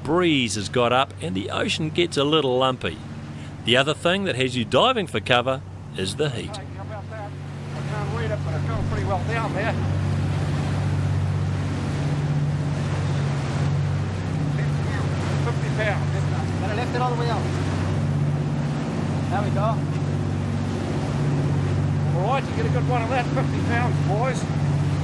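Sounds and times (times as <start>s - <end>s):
boat engines droning: 0.0s - 25.0s
wake and choppy water: 0.0s - 25.0s.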